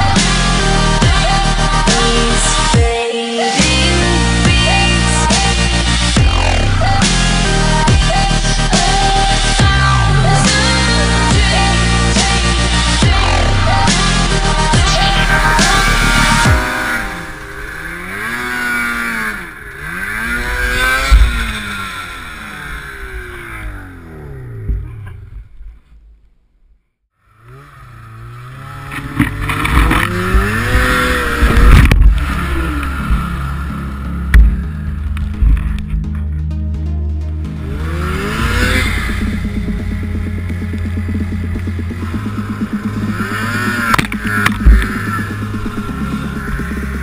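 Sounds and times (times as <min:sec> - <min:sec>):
music: 0:00.0 - 0:17.7, 0:29.7 - 0:47.0
snowmobile engine revving: 0:00.0 - 0:25.9, 0:27.2 - 0:36.1, 0:37.4 - 0:47.0.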